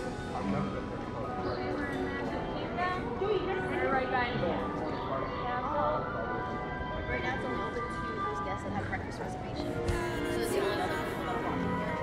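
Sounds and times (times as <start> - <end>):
background music: 0.0 - 12.0
people chattering: 0.0 - 12.0.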